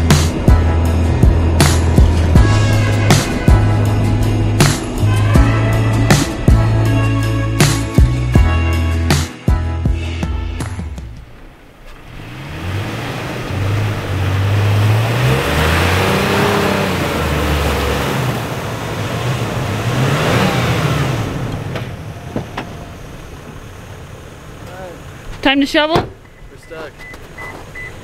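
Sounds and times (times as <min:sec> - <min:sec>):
truck engine revving: 0:00.0 - 0:09.3, 0:10.6 - 0:26.3.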